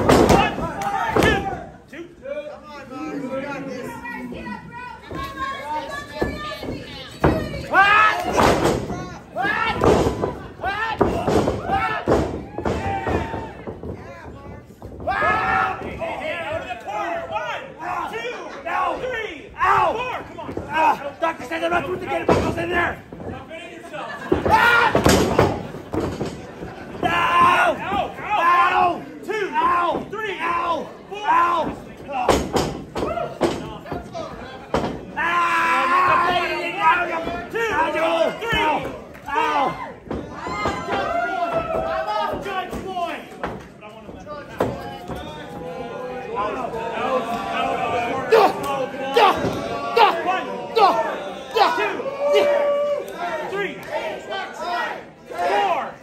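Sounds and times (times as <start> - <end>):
loud shouting voices: 0.0 - 1.9, 2.8 - 14.2, 15.0 - 23.0, 24.1 - 25.7, 26.8 - 32.3, 35.1 - 43.3, 44.8 - 56.0
bodies thudding in wrestling ring: 24.3 - 28.1.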